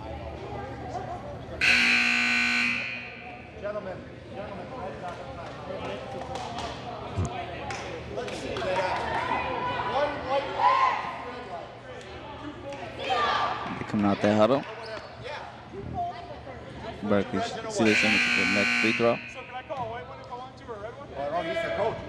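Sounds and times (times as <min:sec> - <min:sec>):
murmur of crowd: 0:00.0 - 0:22.0
scoreboard buzzer: 0:01.6 - 0:03.4, 0:17.8 - 0:19.5.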